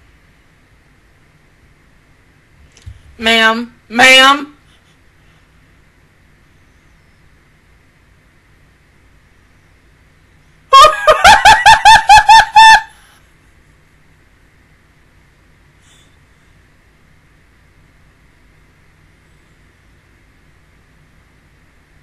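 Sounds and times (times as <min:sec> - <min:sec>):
woman cackling laugh: 0:10.7 - 0:13.0.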